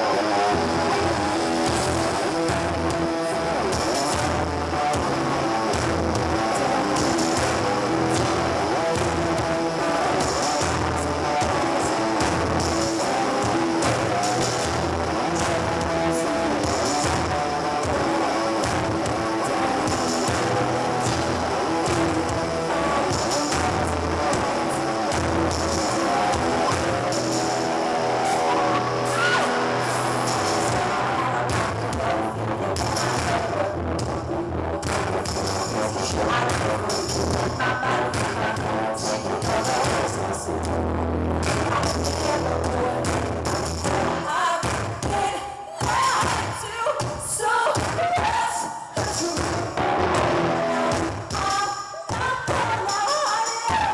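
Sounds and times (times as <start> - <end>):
electric bass line: 0.0 - 45.0, 49.4 - 51.5
drums: 0.0 - 53.9.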